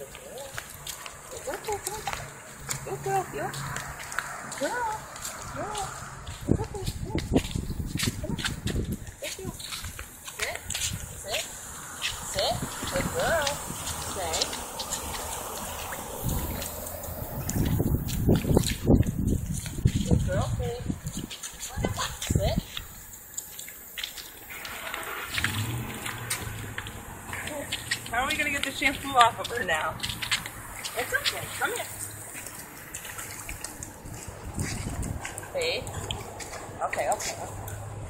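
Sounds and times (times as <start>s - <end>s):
water splashing on wet asphalt: 0.0s - 38.0s.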